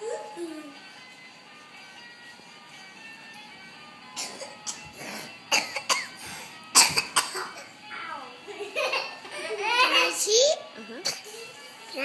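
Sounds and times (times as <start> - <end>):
quiet music: 0.0 - 12.0.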